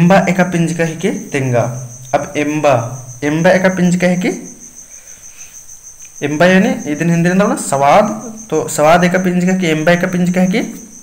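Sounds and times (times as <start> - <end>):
man speaking: 0.0 - 4.5, 6.2 - 10.9
crickets trilling: 0.0 - 11.0.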